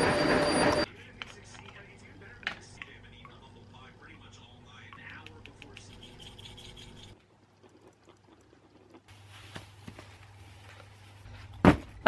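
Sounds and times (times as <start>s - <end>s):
metal spoons scraping paste: 5.7s - 7.2s.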